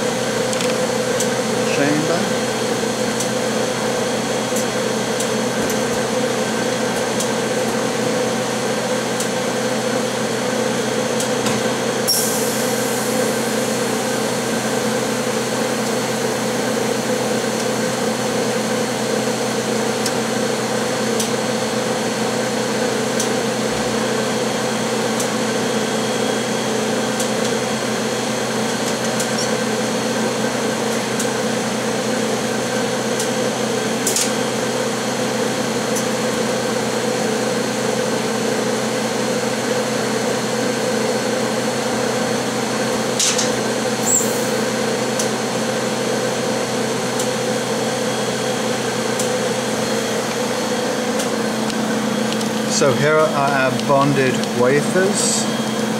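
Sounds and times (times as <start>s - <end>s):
machine hum: 46.4s - 55.9s.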